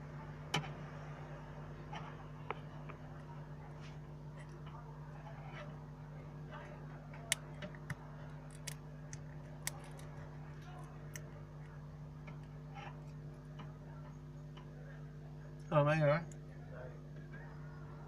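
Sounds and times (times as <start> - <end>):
electrical hum: 0.0 - 18.0.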